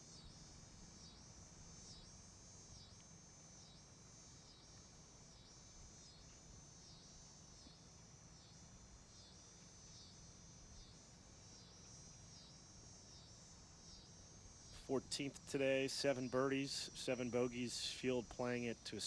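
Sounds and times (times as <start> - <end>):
insect chorus buzzing: 0.0 - 19.0.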